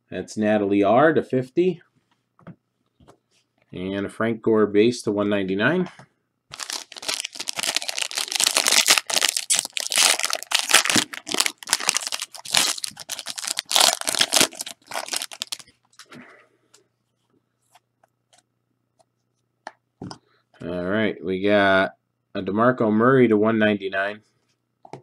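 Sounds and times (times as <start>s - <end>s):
foil wrappers tearing and crinkling: 6.5s - 15.7s.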